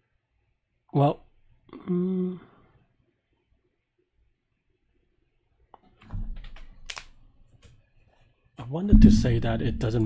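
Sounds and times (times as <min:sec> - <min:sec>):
computer keyboard clicks: 0:06.3 - 0:07.1
dull low knock: 0:08.9 - 0:10.0.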